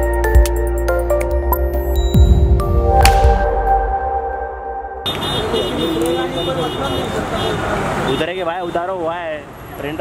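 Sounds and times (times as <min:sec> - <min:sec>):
cars moving slowly: 0:05.1 - 0:10.0
people talking: 0:05.4 - 0:10.0.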